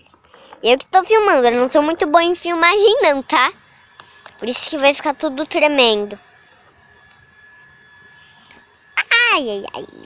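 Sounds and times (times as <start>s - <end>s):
thin high-pitched whine: 0.0s - 10.0s.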